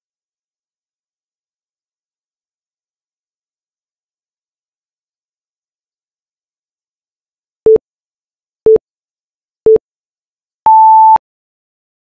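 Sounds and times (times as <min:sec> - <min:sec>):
longer higher beep: 0:10.7 - 0:11.2
short low electronic beeps: 0:10.7 - 0:11.2.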